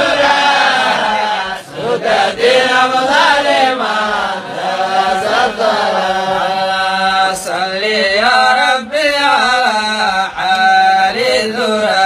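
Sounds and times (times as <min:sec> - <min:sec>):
person chanting: 0:00.0 - 0:12.0.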